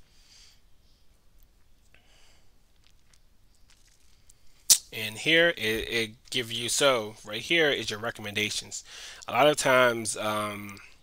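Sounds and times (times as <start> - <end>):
sharp loud click: 4.7 - 4.9
man speaking: 4.7 - 11.0.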